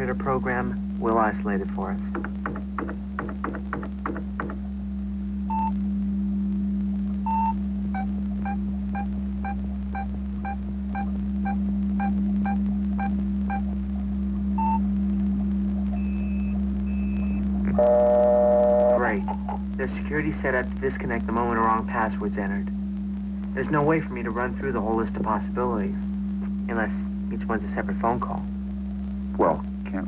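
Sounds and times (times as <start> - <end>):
low steady hum: 0.0 - 30.0
loud buzz: 17.7 - 19.2
higher tones: 17.7 - 19.4.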